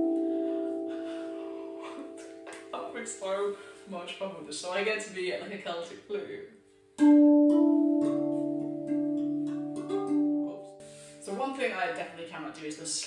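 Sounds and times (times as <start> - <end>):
steel tongue drum melody: 0.0 - 3.9, 7.0 - 11.5.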